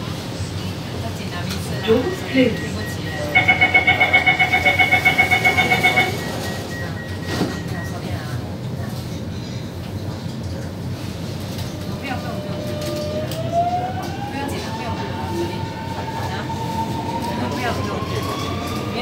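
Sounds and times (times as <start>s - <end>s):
train car hum: 0.0s - 19.0s
train doors shutting: 1.5s - 8.2s
rapid warning beeps: 1.8s - 8.2s.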